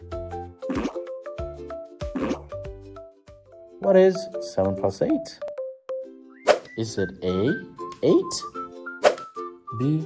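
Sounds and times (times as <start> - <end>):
cheerful children's music: 0.0 - 10.0.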